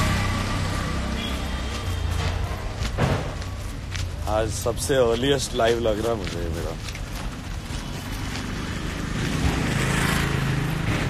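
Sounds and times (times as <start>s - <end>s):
vehicle passing by: 0.0s - 2.9s, 7.9s - 11.0s.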